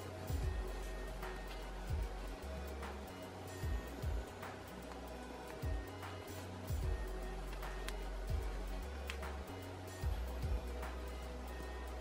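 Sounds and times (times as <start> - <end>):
low bass line: 0.3 - 3.0, 6.7 - 12.0.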